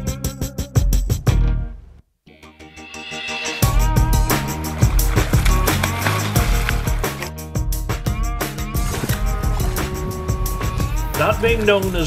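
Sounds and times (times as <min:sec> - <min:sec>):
background music with drum beat: 0:00.0 - 0:02.0, 0:02.8 - 0:12.0.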